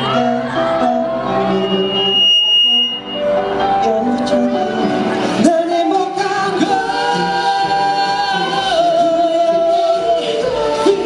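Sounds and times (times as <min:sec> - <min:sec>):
backing music: 0:00.0 - 0:11.0
high-pitched electronic beep: 0:00.2 - 0:05.1.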